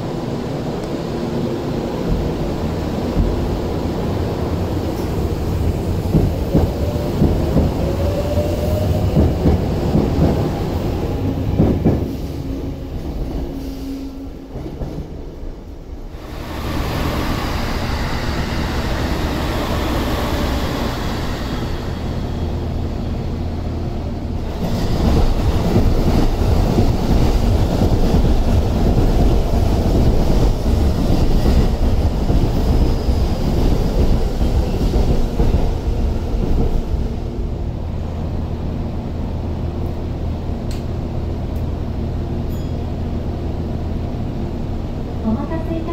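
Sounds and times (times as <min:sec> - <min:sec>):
train wheels rumbling on rails: 0:00.0 - 0:45.9.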